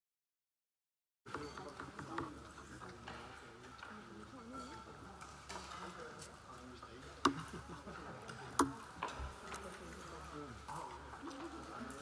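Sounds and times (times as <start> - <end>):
chatter of diners: 1.3 - 12.0
eating sounds with sharp clicks: 8.5 - 8.8.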